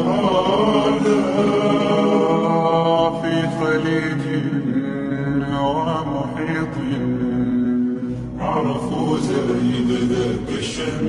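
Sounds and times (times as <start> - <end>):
reverberant unaccompanied singing: 0.0 - 11.0.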